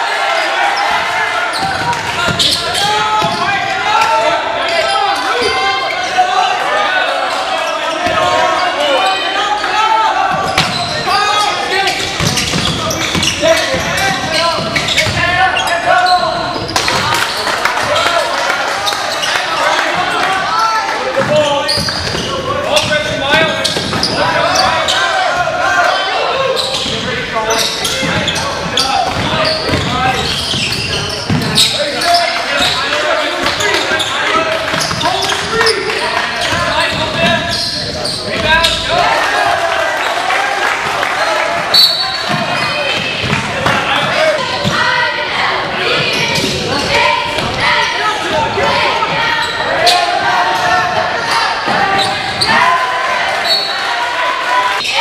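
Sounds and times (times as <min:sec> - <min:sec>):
overlapping voices echoing: 0:00.0 - 0:55.0.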